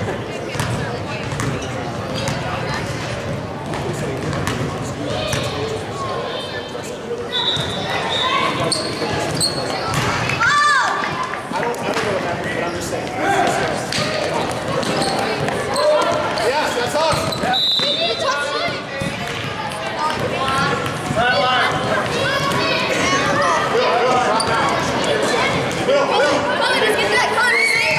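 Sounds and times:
spectators' voices and shouts: 0.0 - 27.9
sneakers squeaking: 0.2 - 5.8, 7.2 - 10.5, 14.0 - 25.9.

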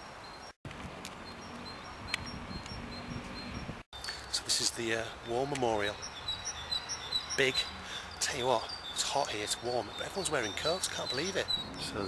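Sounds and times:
small birds chirping: 0.0 - 12.0
steady outdoor hush: 0.0 - 12.0.

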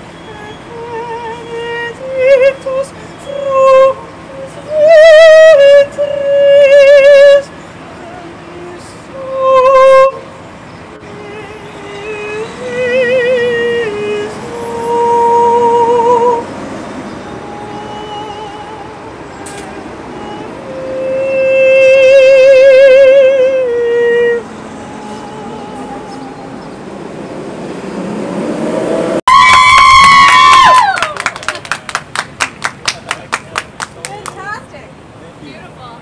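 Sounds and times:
high male voice singing: 0.0 - 10.4, 11.0 - 16.6, 17.2 - 26.8
people clapping: 29.3 - 34.6.

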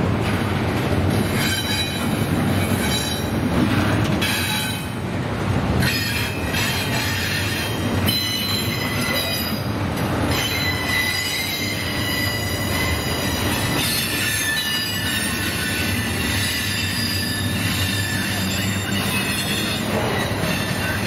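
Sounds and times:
rumble of train wheels on track: 0.0 - 21.0
high-pitched wheel squeal: 5.8 - 9.6, 10.3 - 21.0.

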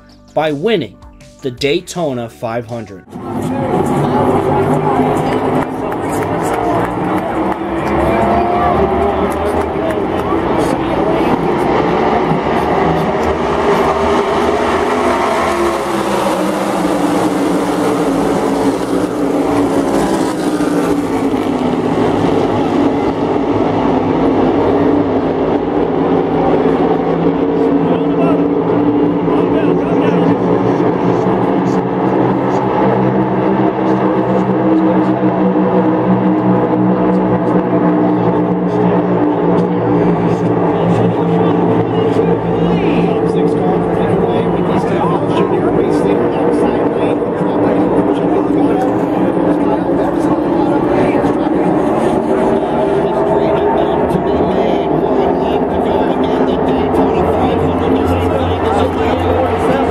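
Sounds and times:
race car engines droning: 2.0 - 59.9.

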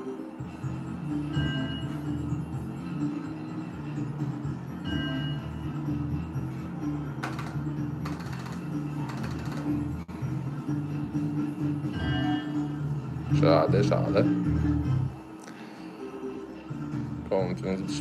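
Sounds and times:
slot machine music: 0.0 - 15.2.

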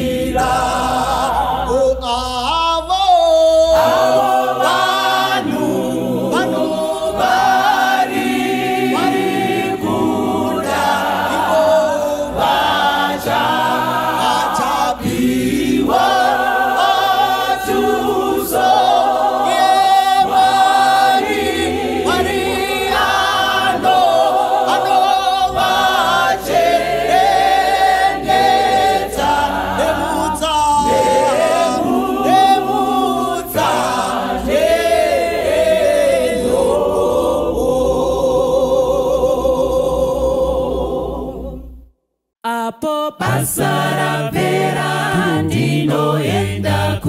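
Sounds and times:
choir singing a hymn: 0.0 - 2.5, 3.1 - 41.8, 43.2 - 47.0.

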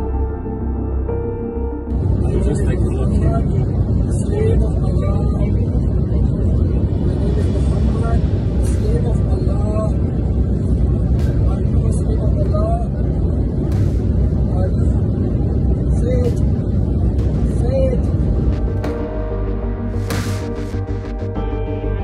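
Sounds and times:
airliner cabin rumble: 1.9 - 21.3.

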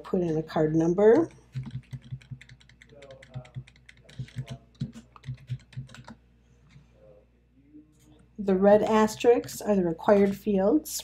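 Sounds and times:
keyboard keys clicking: 1.5 - 6.2.

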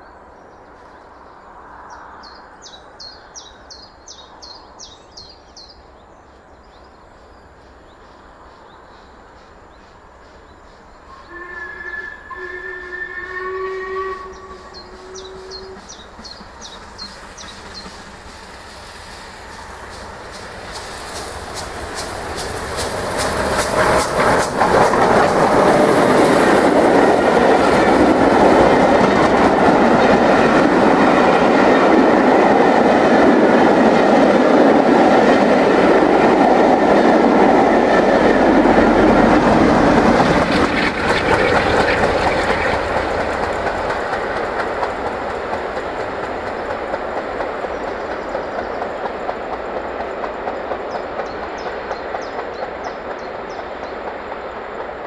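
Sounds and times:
steam train passing at speed: 0.0 - 55.0
wheels clattering over rail joints: 15.8 - 51.4.

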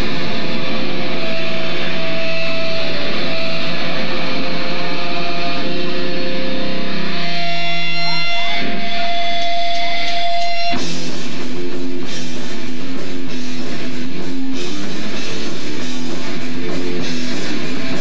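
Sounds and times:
heavy metal band playing: 0.0 - 18.0.

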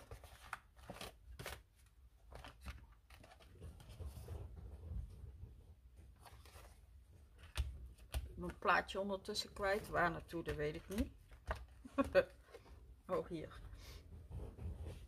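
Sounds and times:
stiff paper pages rustling: 0.0 - 5.0, 6.1 - 8.8, 9.4 - 12.7.

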